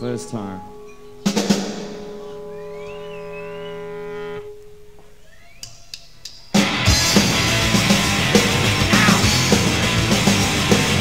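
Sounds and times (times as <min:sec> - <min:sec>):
electric guitar chord ringing: 0:00.0 - 0:05.2
wavering high tone: 0:00.0 - 0:05.6
punk rock band with drums: 0:06.5 - 0:11.0.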